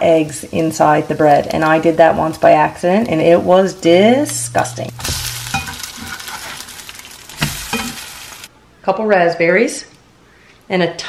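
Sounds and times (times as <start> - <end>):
bread sizzling in a frying pan: 0.0 - 8.5.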